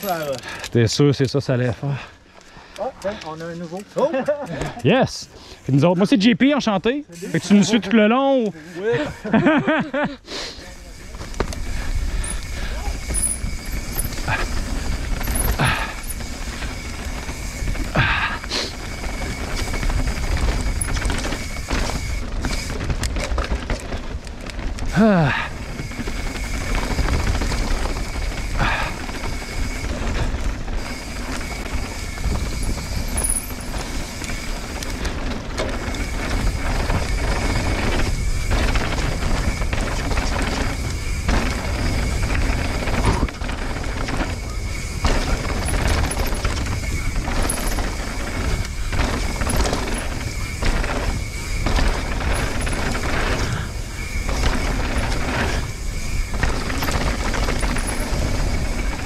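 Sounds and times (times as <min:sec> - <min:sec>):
bike knocks and rattles: 0:11.1 - 0:59.0
tyre noise over dirt: 0:11.2 - 0:59.0
wind rush on microphone: 0:11.3 - 0:59.0.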